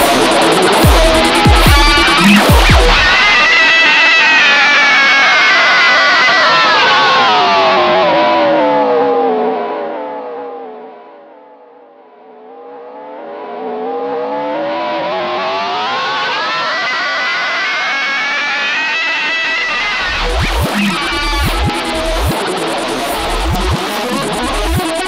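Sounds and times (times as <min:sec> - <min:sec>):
distorted electric guitar pitch sweep: 0:00.0 - 0:09.2, 0:14.8 - 0:25.0.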